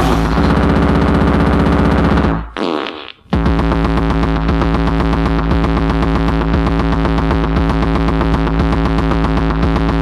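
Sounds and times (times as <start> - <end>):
pounding electronic rave beat: 0.0 - 2.6, 3.3 - 10.0.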